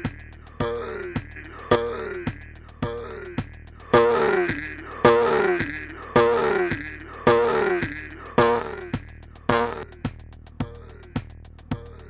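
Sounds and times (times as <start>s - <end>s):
electronic drum loop: 0.0s - 12.0s.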